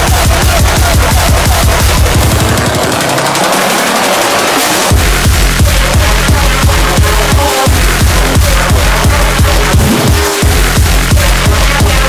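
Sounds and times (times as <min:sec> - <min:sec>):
drum and bass music: 0:00.0 - 0:12.0
rapid drum hits: 0:00.0 - 0:12.0.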